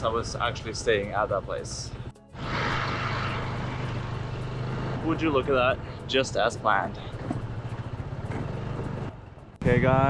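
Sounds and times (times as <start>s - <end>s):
wind and road noise: 0.0s - 10.0s
scooter engine running: 2.4s - 9.2s.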